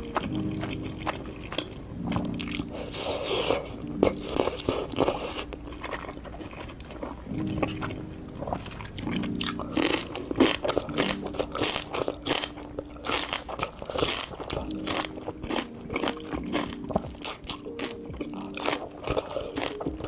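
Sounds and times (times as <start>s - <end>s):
crunchy bites and wet chewing: 0.0s - 20.0s.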